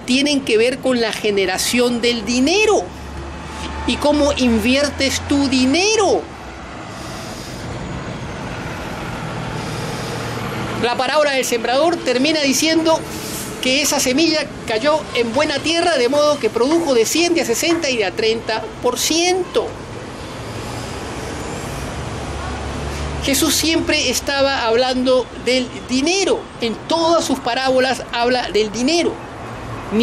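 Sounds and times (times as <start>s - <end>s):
heavy vehicle passing: 0.0s - 30.0s
street traffic: 0.0s - 30.0s.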